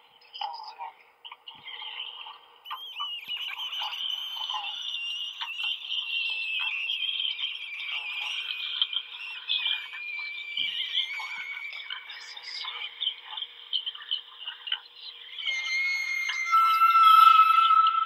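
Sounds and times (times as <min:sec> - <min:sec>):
high wavering rasping voice: 0:15.4 - 0:18.0.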